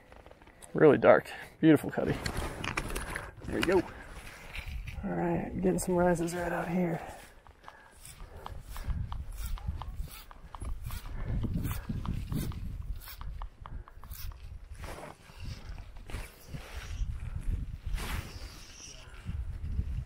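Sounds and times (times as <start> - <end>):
wind rumbling on microphone: 8.0 - 20.0.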